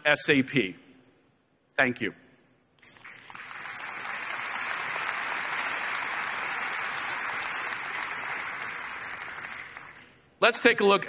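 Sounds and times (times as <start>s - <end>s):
audience applauding: 2.8s - 10.2s.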